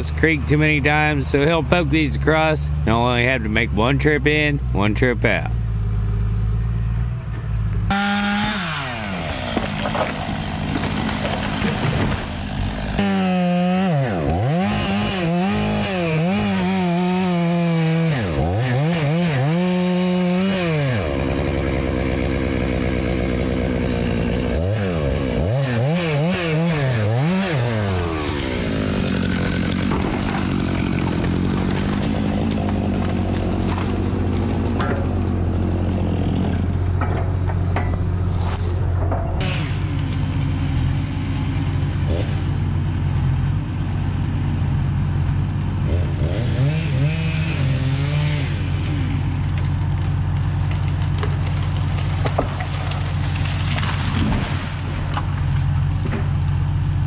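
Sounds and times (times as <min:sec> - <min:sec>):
diesel engine running: 0:00.0 - 0:26.0, 0:26.8 - 0:57.0
chainsaw revving: 0:07.9 - 0:36.9, 0:42.0 - 0:42.6, 0:45.8 - 0:55.4.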